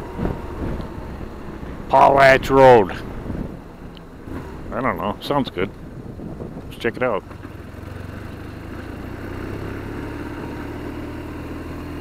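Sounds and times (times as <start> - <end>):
wind noise on microphone: 0.0 - 8.3
motorcycle engine cruising: 0.0 - 12.0.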